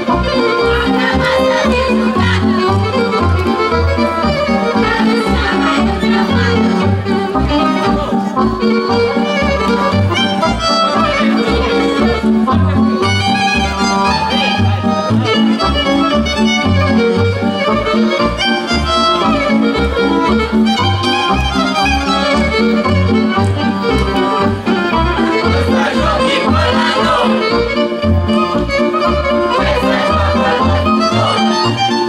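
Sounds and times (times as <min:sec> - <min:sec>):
accordion: 0:00.0 - 0:32.0
fiddle: 0:00.0 - 0:32.0
folk dance music: 0:00.0 - 0:32.0
pulsing bass beat: 0:25.0 - 0:27.4.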